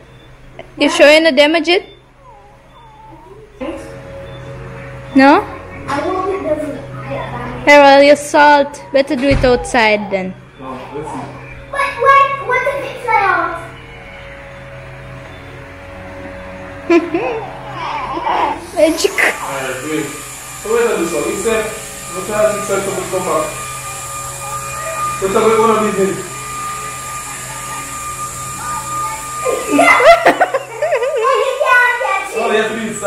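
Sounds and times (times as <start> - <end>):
small propeller motor whirring: 2.0 - 33.0
even hiss: 17.2 - 33.0.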